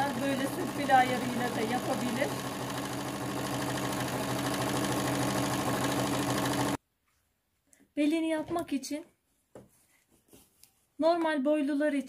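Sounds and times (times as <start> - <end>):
sewing machine stitching: 0.0 - 6.8.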